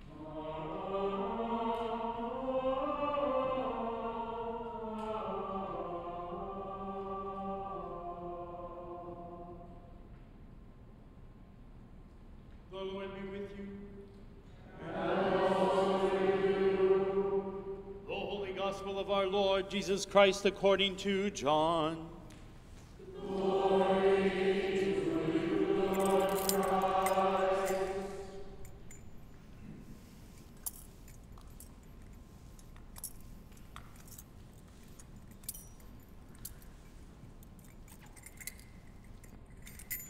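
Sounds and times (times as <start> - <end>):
congregation chanting: 0.0 - 10.0, 14.6 - 22.3, 22.9 - 29.0
thurible chains clinking: 25.0 - 40.0.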